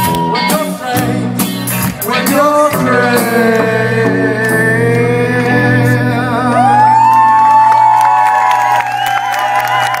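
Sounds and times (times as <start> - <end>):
audience whooping and cheering: 0.0 - 0.7, 6.4 - 10.0.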